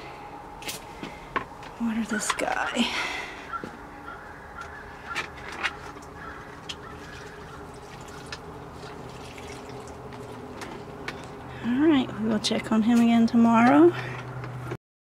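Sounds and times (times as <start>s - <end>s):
faint steady hum: 0.0s - 14.8s
water pouring onto soil: 7.0s - 10.4s.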